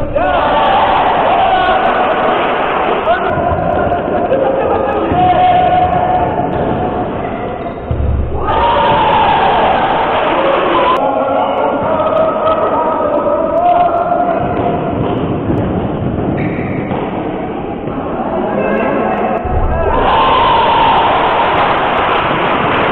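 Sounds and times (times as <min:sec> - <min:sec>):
basketball bouncing on court: 0:14.4 - 0:17.6.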